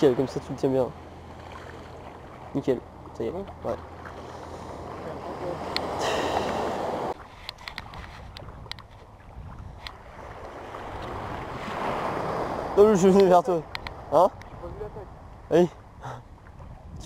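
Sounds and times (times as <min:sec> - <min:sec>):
small waves washing: 0:00.0 - 0:17.0
wind buffeting microphone: 0:05.6 - 0:12.8, 0:13.6 - 0:17.0
light clicks: 0:13.2 - 0:14.5.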